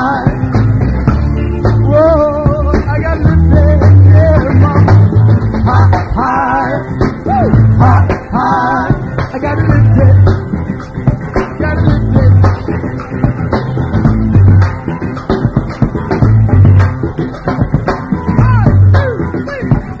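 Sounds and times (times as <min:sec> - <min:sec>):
upbeat band music: 0:00.0 - 0:20.0.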